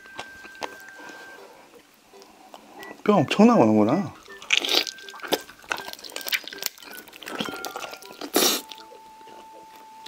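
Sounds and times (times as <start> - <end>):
person slurping and sucking food: 4.5 - 8.8.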